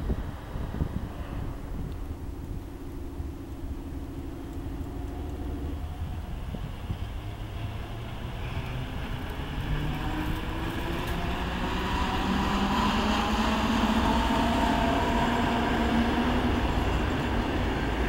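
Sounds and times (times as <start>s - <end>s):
electric train motor whine: 0.0s - 18.0s
wheels rumbling on track: 0.0s - 18.0s.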